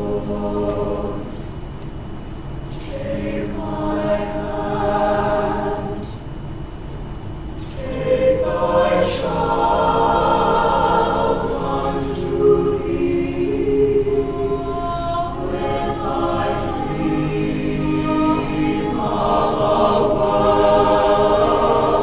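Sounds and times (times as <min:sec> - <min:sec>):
choir singing sustained chords: 0:00.0 - 0:22.0.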